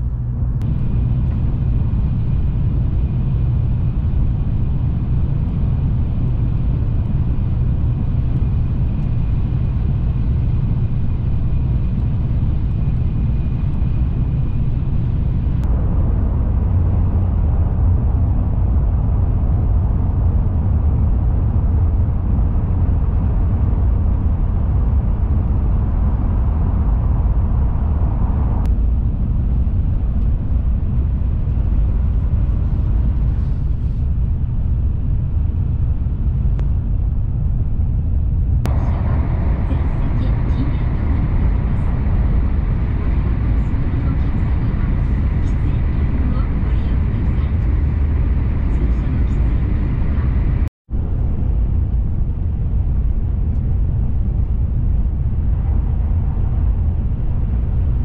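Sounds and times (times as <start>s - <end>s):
train running rumble inside cabin: 0.0s - 58.0s.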